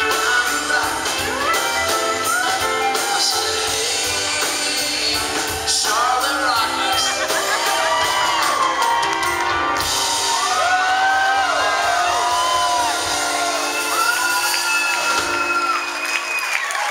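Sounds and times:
rock band playing: 0:00.0 - 0:16.9
crowd cheering and whooping: 0:06.5 - 0:16.9.

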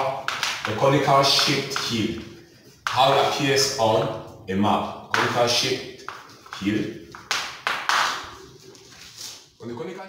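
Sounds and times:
chalk tapping and scraping on blackboard: 0:00.1 - 0:04.1, 0:05.1 - 0:08.6.

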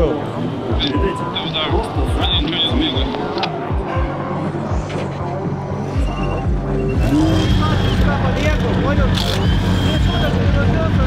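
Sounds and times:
car engine running: 0:04.7 - 0:11.0.

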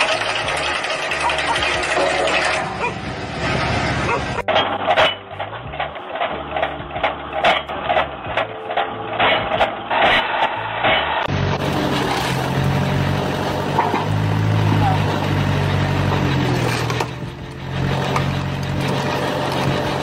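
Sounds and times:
log splitter engine hum: 0:00.0 - 0:20.0
music: 0:04.4 - 0:20.0.

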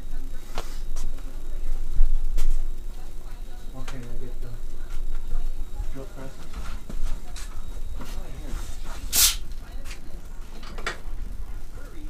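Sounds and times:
indistinct low talk: 0:00.0 - 0:12.0
steady low rumble: 0:00.0 - 0:12.0
short sharp hiss: 0:09.1 - 0:09.4.

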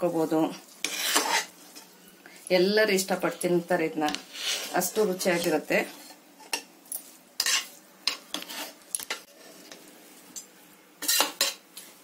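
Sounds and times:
metal spoon scraping a pot: 0:00.8 - 0:01.9, 0:07.4 - 0:09.8, 0:11.0 - 0:11.6.

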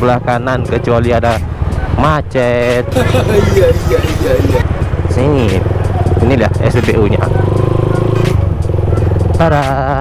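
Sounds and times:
motorcycle engine running: 0:02.9 - 0:10.0.

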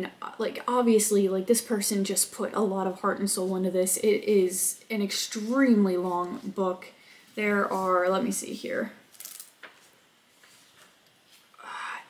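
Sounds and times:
book pages rustling: 0:09.6 - 0:11.5.

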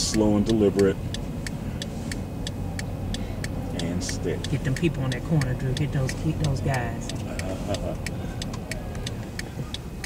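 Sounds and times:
car engine and road rumble: 0:00.0 - 0:10.0
quick regular ticking: 0:00.0 - 0:10.0.

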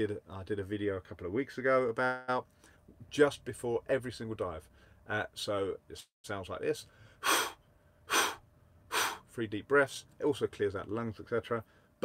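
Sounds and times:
forceful breaths blown out: 0:06.9 - 0:09.3.

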